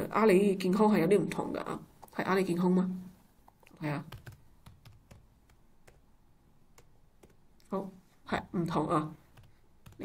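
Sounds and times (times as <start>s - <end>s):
faint computer keyboard typing: 3.5s - 6.1s, 6.7s - 7.7s, 9.3s - 10.0s.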